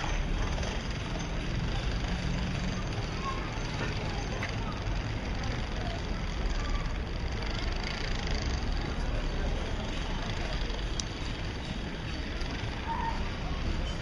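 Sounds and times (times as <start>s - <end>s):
faint voices: 0.0s - 14.0s.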